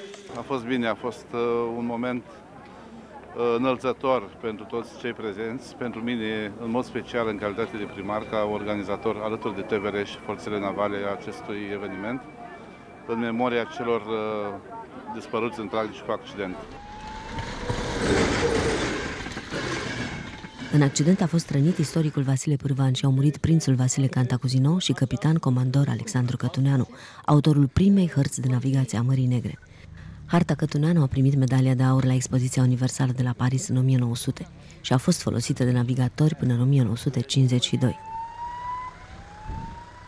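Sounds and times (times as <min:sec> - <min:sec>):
distant siren wailing: 0:06.8 - 0:22.2, 0:37.4 - 0:40.0
train wheels on rails: 0:16.6 - 0:22.2.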